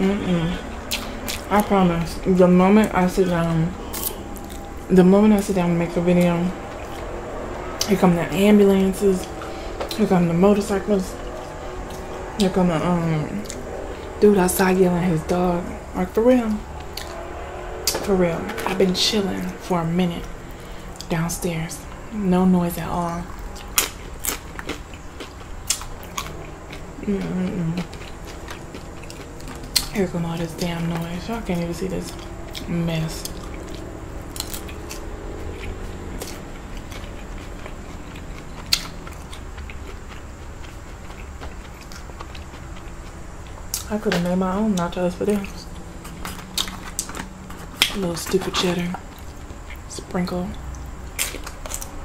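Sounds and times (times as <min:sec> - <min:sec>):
chips being chewed: 0:03.9 - 0:04.7, 0:23.4 - 0:31.2, 0:32.0 - 0:49.9, 0:50.8 - 0:52.0.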